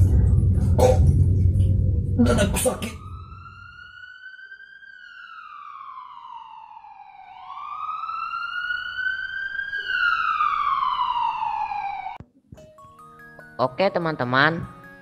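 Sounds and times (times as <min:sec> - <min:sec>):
ambulance siren wailing: 0:02.2 - 0:12.2.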